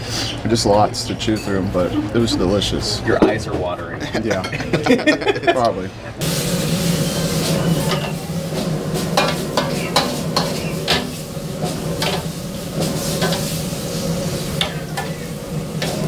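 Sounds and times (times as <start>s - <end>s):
food sizzling: 6.2s - 16.0s.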